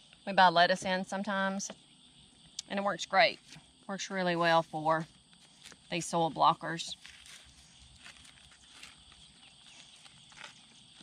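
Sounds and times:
hand trowel digging soil: 6.8s - 11.0s.

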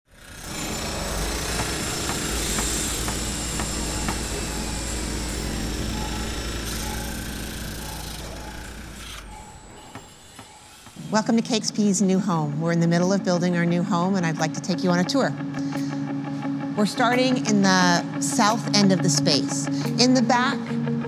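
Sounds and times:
steady low hum: 0.4s - 18.5s
sharp knocks: 1.0s - 4.9s.

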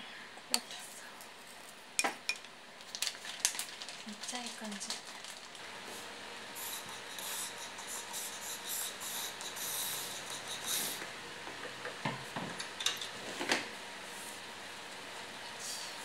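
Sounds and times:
fan running: 0.0s - 16.0s.

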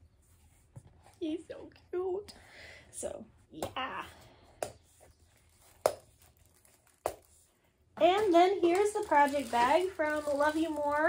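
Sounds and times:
handling rustle: 5.0s - 11.0s.

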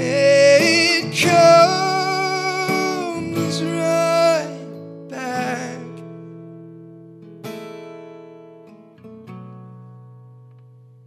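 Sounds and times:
man singing with vibrato: 0.0s - 6.1s
strummed acoustic guitar: 0.0s - 11.0s.

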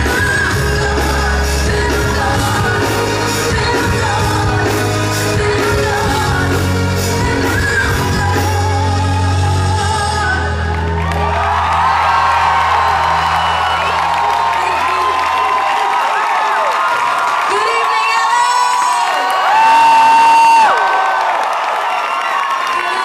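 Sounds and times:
audience cheering and whooping: 9.8s - 23.0s.

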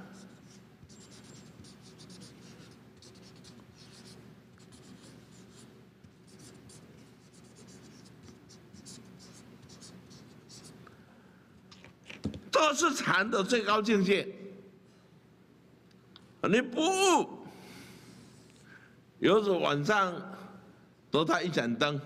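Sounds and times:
marker pen writing on paper: 0.0s - 10.8s
faint steady low hum: 0.0s - 22.0s.

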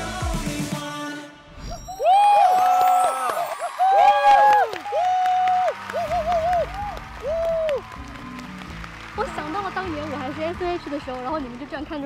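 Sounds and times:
people whooping and cheering: 1.7s - 10.1s
applause: 2.3s - 12.0s
crowd noise: 5.7s - 12.0s.

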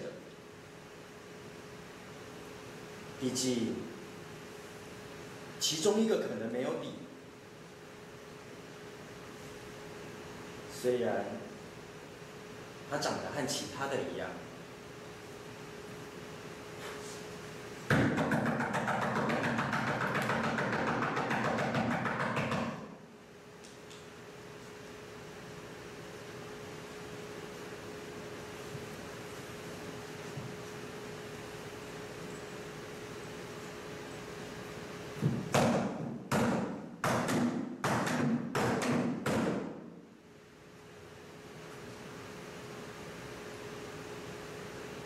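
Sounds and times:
faint steady hum: 0.0s - 45.0s.

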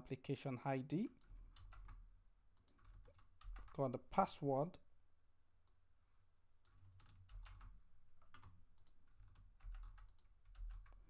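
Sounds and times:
keyboard typing clicks: 1.2s - 2.0s, 6.6s - 11.0s.

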